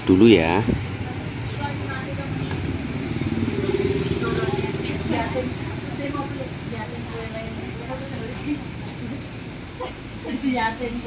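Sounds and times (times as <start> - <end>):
motorcycle engine running: 0.6 - 9.5.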